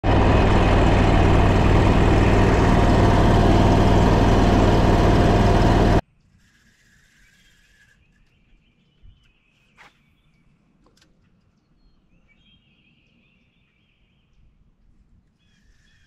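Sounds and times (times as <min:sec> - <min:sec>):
boat engine running loud: 0:00.0 - 0:06.0.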